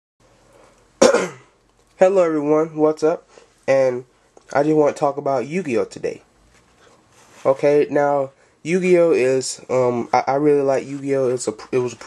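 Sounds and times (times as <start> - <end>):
person coughing: 1.0 - 1.6.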